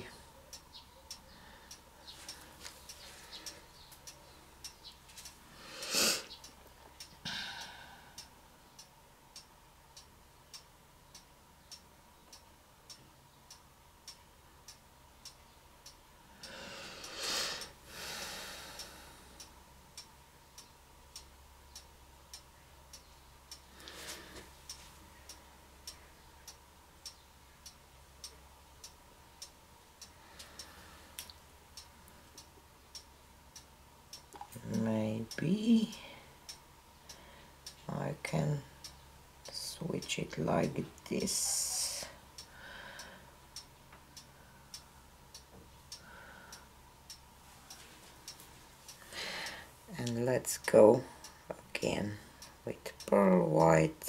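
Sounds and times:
clock ticking: 0.0 - 5.4, 6.2 - 17.9, 18.8 - 54.0.

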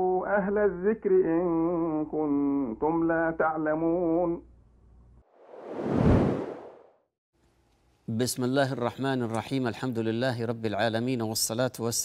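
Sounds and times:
whoosh sound effect: 5.4 - 6.8.

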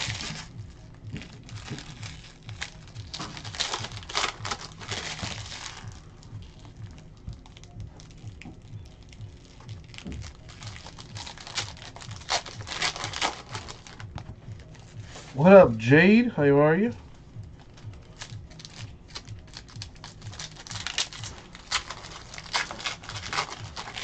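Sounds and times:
foil wrappers crinkling: 0.0 - 15.5, 17.1 - 24.0
faint background music: 0.0 - 24.0.

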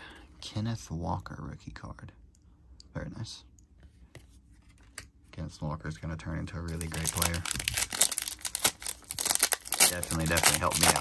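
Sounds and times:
trading cards rustling and clicking: 6.7 - 11.0.

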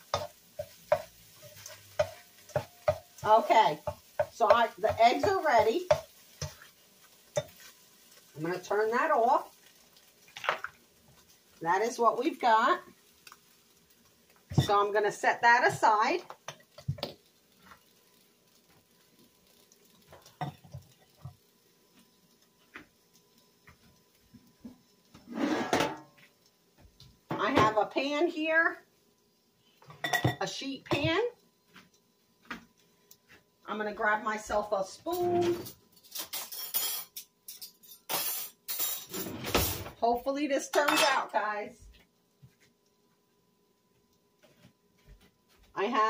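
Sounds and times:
metal cookware clattering: 14.5 - 14.9, 25.2 - 26.2, 29.9 - 31.1, 35.1 - 39.9, 40.7 - 41.4
cookware knocks and clinks: 25.6 - 26.1, 30.0 - 31.1.

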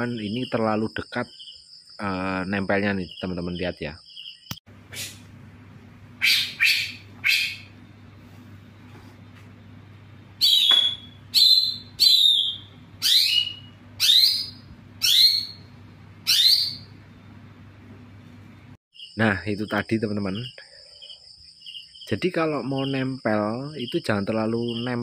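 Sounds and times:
songbird chirping: 0.0 - 4.6, 10.4 - 17.4, 18.9 - 25.0
faint low hum: 4.7 - 21.2.

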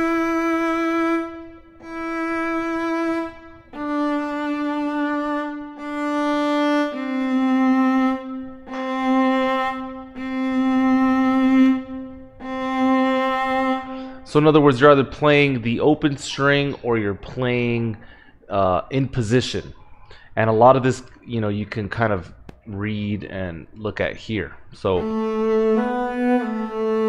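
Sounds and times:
viola bowed notes: 0.0 - 15.1, 24.9 - 27.0.

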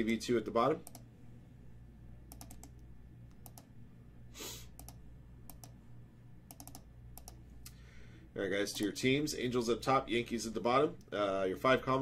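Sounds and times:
mouse and keyboard clicks: 2.3 - 3.7, 6.5 - 7.4.

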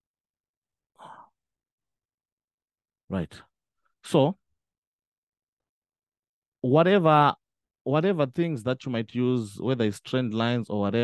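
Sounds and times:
short breath: 1.0 - 1.3.

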